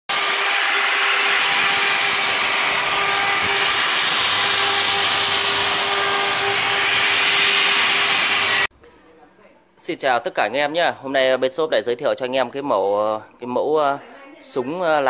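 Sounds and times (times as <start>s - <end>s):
angle grinder sanding wood: 0.1s - 8.7s.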